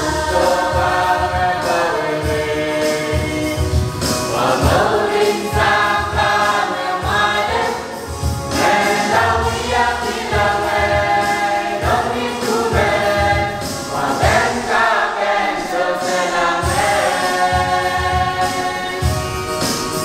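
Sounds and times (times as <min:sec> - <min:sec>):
choir singing a hymn: 0:00.0 - 0:19.7
steady low beat: 0:02.2 - 0:14.8, 0:16.0 - 0:19.5.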